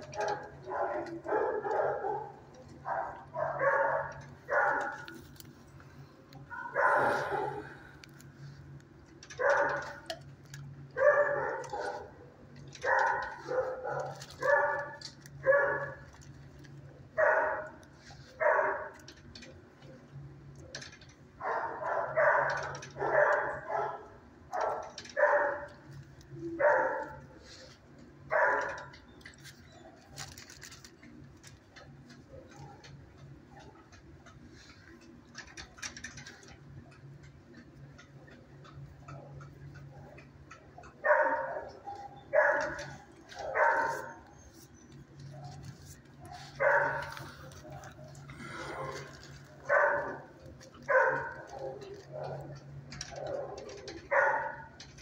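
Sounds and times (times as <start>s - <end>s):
dog barking: 0.0s - 5.2s, 6.5s - 7.7s, 9.4s - 10.0s, 11.0s - 16.1s, 17.2s - 19.1s, 21.4s - 25.9s, 26.5s - 27.3s, 28.3s - 29.0s, 40.9s - 44.4s, 46.2s - 54.8s
steady low hum: 0.0s - 55.0s.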